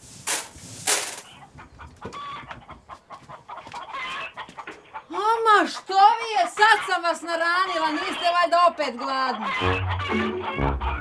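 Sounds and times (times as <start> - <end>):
rustling or scraping: 0.0 - 2.6
chickens clucking: 0.9 - 11.0.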